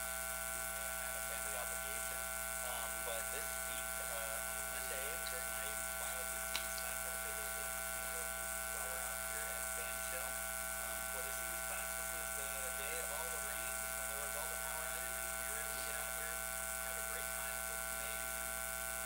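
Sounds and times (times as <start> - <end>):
faint man's speech: 0.0 - 18.5
electrical buzz and hum: 0.0 - 19.0.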